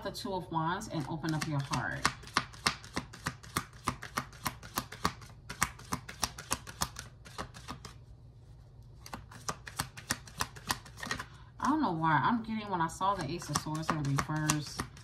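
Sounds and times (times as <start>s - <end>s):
cards being shuffled: 1.0s - 11.4s, 13.1s - 15.0s.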